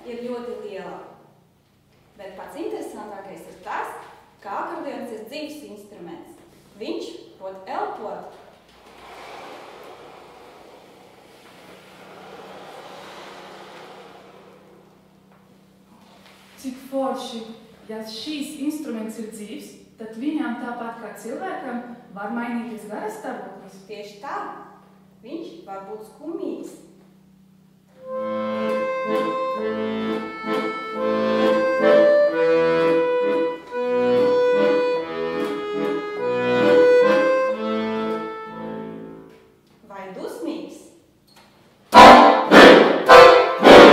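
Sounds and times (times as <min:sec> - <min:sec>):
accordion bellows air rush: 0:08.8 - 0:15.2, 0:27.9 - 0:39.2, 0:41.9 - 0:43.9.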